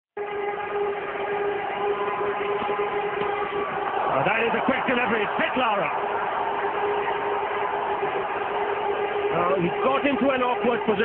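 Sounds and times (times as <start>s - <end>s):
steady horn-like tone: 0.2s - 11.0s.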